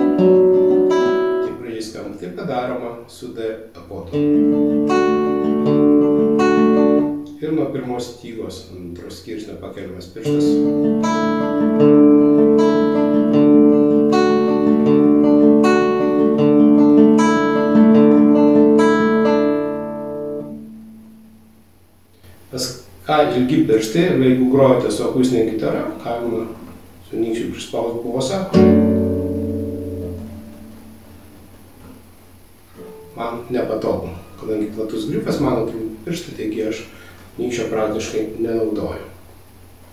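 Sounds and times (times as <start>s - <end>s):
classical guitar fingerpicked arpeggio: 0.0s - 1.6s, 4.1s - 7.4s, 10.2s - 21.4s, 28.4s - 32.0s, 32.7s - 35.4s.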